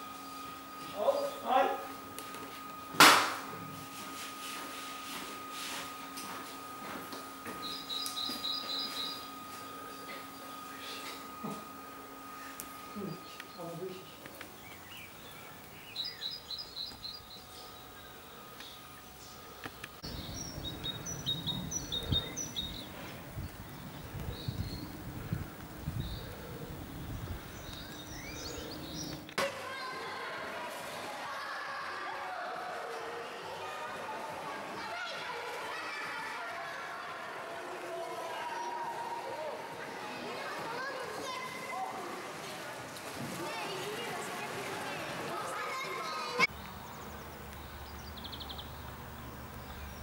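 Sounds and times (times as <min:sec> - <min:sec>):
sharp bang in tiled room: 0:03.0 - 0:03.5
low rumbling outdoor noise: 0:07.3 - 0:29.4, 0:44.3 - 0:50.0
small songbirds chirping: 0:07.6 - 0:09.4, 0:12.4 - 0:29.4, 0:46.5 - 0:50.0.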